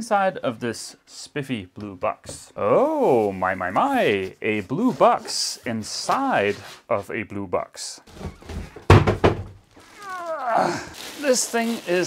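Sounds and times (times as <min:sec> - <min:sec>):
heavy thunk: 0:08.1 - 0:09.6
foam and cardboard rustling: 0:09.7 - 0:12.0.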